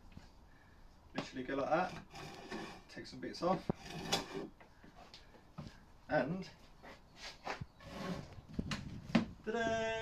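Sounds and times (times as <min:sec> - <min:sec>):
drawknife scraping wood: 0:01.8 - 0:02.9, 0:03.7 - 0:04.5, 0:07.8 - 0:08.4
wooden bench knocks and creaks: 0:08.5 - 0:09.4.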